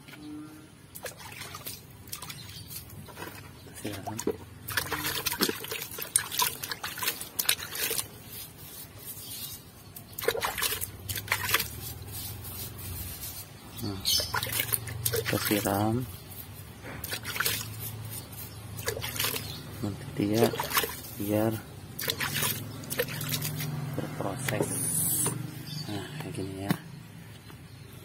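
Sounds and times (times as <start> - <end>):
water trickling into soil: 0.8 - 26.8.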